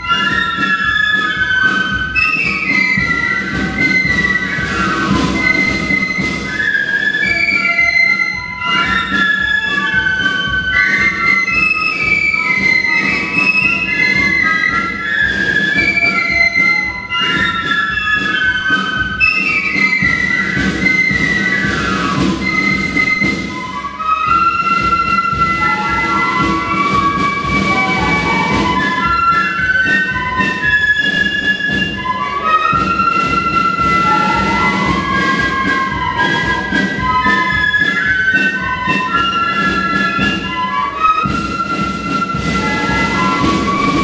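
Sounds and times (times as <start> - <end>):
flute band playing a melody: 0.0 - 44.0.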